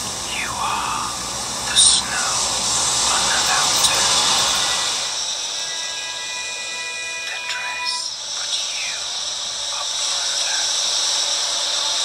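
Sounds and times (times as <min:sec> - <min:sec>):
ocean surf hiss: 0:00.0 - 0:12.0.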